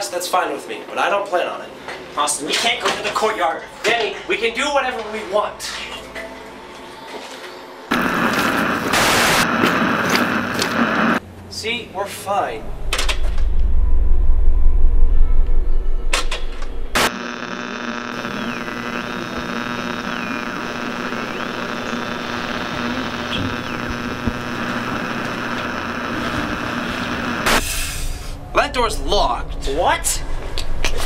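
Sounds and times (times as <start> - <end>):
deep rumble: 12.6 - 17.0
humming drone: 12.6 - 27.6.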